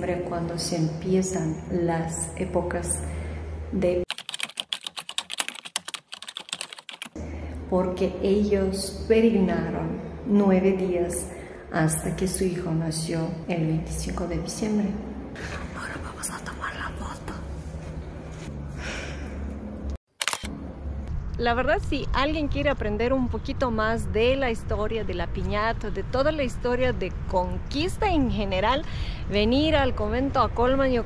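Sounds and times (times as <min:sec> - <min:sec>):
low steady hum: 0:00.0 - 0:04.1, 0:07.2 - 0:31.0
keyboard typing clicks: 0:04.1 - 0:07.2
camera shutter click: 0:20.2 - 0:20.5.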